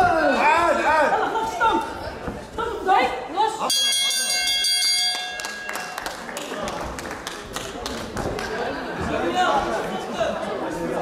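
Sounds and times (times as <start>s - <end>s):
boxing ring bell struck: 3.7s - 6.1s.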